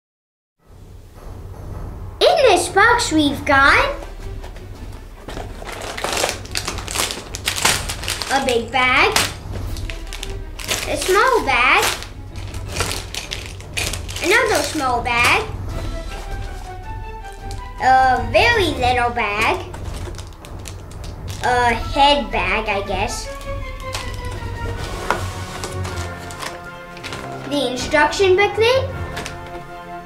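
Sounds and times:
background music: 0:00.6 - 0:30.0
plastic bags crinkling: 0:05.2 - 0:17.8, 0:18.8 - 0:21.8, 0:23.2 - 0:27.6, 0:29.0 - 0:29.7.

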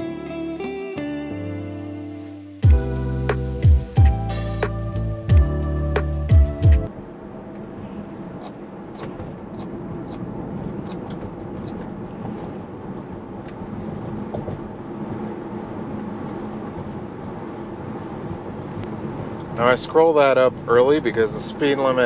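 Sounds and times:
tyre and road noise: 0:06.3 - 0:22.0.

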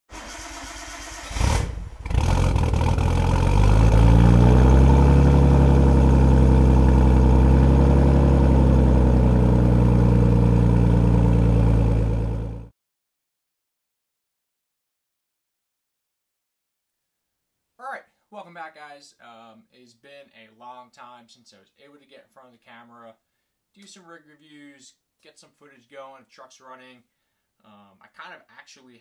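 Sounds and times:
car engine starting and idling: 0:00.1 - 0:12.7.

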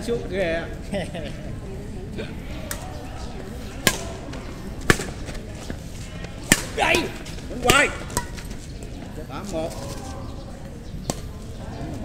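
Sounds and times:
racket hitting shuttlecock: 0:03.8 - 0:05.2, 0:06.4 - 0:07.0, 0:07.6 - 0:08.5
players shouting: 0:06.2 - 0:08.4.

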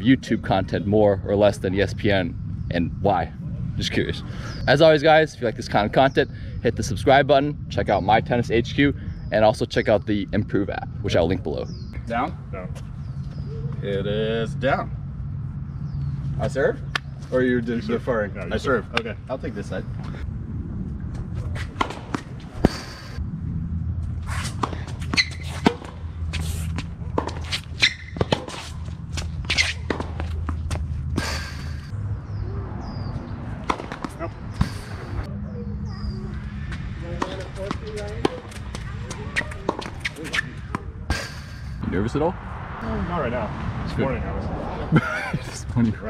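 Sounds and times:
steady low hum: 0:00.0 - 0:46.0
tennis ball bouncing: 0:21.6 - 0:23.1, 0:24.3 - 0:31.8, 0:33.6 - 0:35.2, 0:36.7 - 0:40.9
racket hitting tennis ball: 0:21.6 - 0:23.2, 0:24.2 - 0:31.9, 0:33.6 - 0:35.2, 0:37.2 - 0:41.6.

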